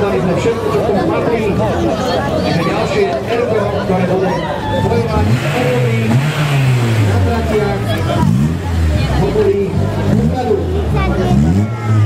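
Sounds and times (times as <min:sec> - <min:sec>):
crowd chatter: 0:00.0 - 0:12.0
car engine at low revs: 0:04.9 - 0:12.0.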